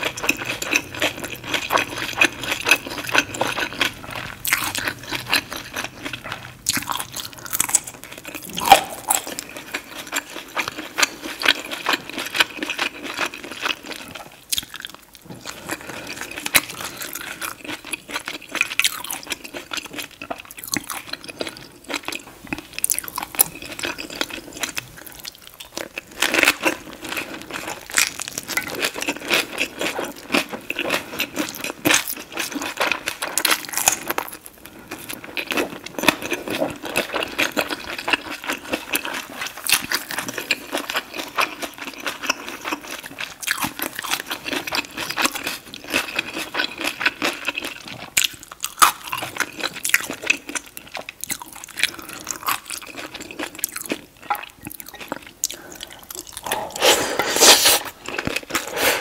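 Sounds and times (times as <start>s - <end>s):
chewing crunchy food: 0.0s - 59.0s
wet mouth sounds: 8.4s - 9.3s, 54.9s - 59.0s.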